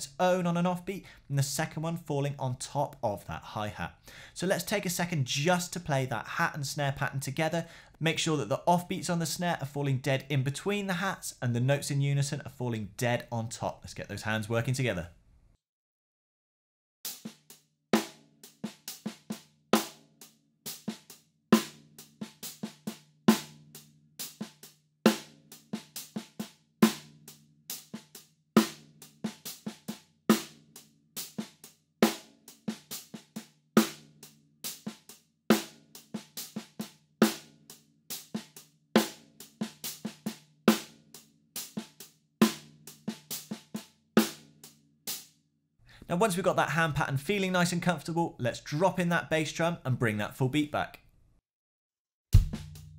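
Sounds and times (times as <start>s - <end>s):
snare drum backbeats and ghost notes: 20.7s - 37.5s, 38.1s - 41.0s, 41.6s - 44.5s, 52.4s - 52.9s.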